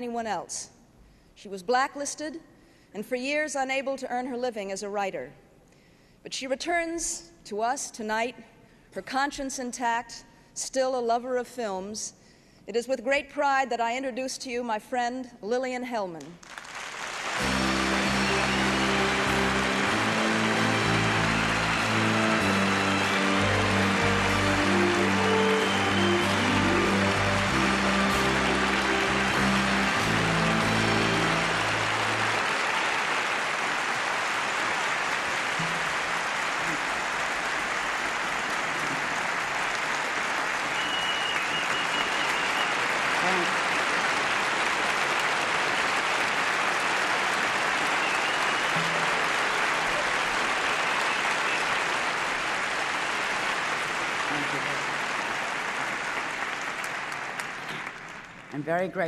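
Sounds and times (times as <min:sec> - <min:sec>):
audience applause: 0:16.4 - 0:58.6
music playing: 0:17.2 - 0:33.9, 0:34.8 - 0:38.2, 0:46.8 - 0:52.4.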